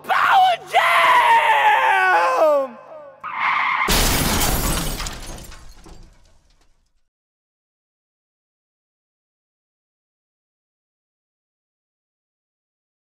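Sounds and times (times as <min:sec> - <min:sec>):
sudden crash: 0:03.9 - 0:06.8.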